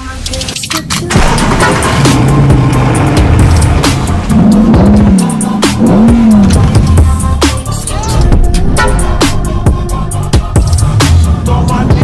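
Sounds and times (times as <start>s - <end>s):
music with a beat: 0.0s - 12.0s
car engine revving: 1.1s - 7.6s.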